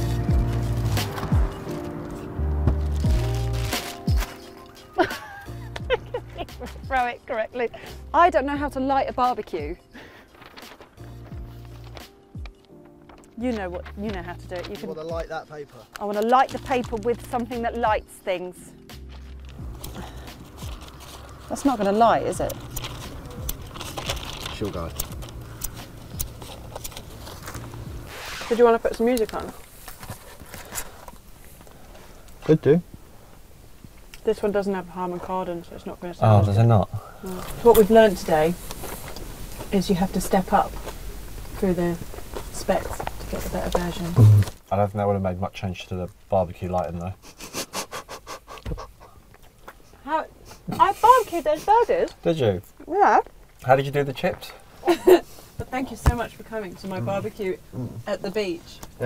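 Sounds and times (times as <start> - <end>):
faint clicks and rustles: 9.4 - 15.1, 19.1 - 34.3, 37.3 - 44.7
low thump: 44.2 - 44.6
breathy laughter: 47.3 - 49.2.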